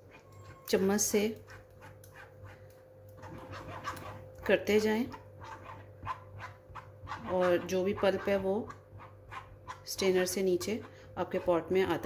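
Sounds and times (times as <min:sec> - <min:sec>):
spoon scraping pulp through strainer: 0:00.0 - 0:12.0.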